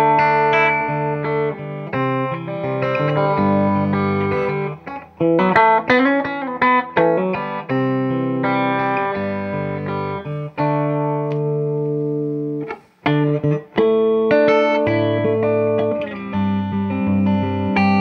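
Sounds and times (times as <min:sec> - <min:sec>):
fingerpicked electric guitar: 0:00.0 - 0:18.0.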